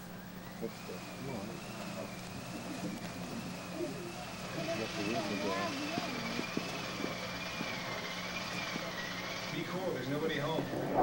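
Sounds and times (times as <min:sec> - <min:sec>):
high wavering whine: 0:00.0 - 0:11.0
steady low hum: 0:00.0 - 0:11.0
indistinct voices in a room: 0:00.5 - 0:11.0.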